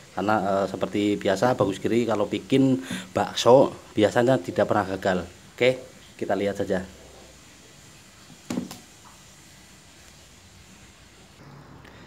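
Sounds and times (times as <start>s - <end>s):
water boiling in a pot: 0.0s - 11.4s.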